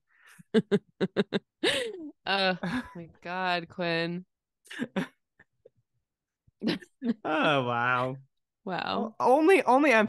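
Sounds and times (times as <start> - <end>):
breathy laughter: 0.3 - 3.0.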